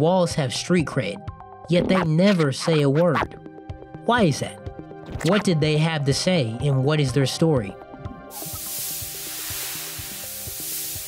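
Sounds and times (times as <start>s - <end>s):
background music: 0.0s - 11.0s
spray paint can hissing: 8.3s - 11.0s.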